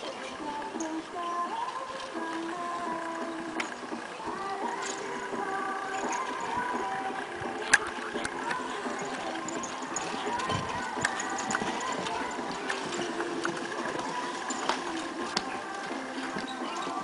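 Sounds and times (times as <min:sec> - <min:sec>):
pony hoofbeats: 0:00.0 - 0:17.0
scattered clicks: 0:02.1 - 0:17.0.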